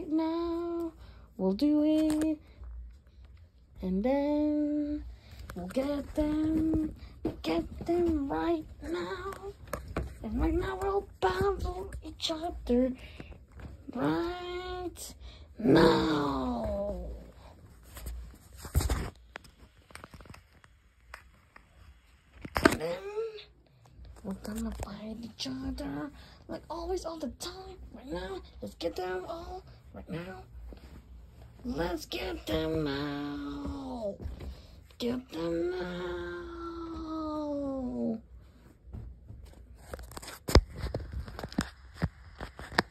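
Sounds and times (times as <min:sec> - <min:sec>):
rustles of handling: 0:16.1 - 0:22.8, 0:23.7 - 0:35.5.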